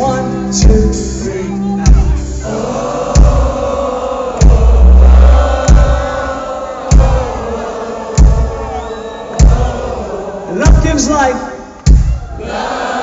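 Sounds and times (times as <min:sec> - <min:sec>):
live rock band playing: 0:00.0 - 0:06.3
crowd singing along: 0:01.3 - 0:13.0
heavy bass drum hits: 0:03.2 - 0:03.7, 0:04.4 - 0:06.3, 0:06.9 - 0:07.6, 0:08.2 - 0:08.7.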